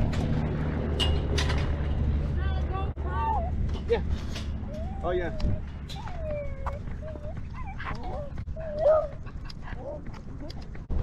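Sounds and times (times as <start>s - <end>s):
small dog whining: 4.6s - 10.1s.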